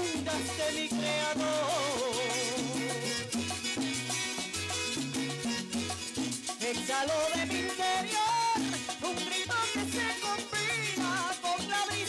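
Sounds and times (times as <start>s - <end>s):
string band instrumental: 2.0s - 7.2s.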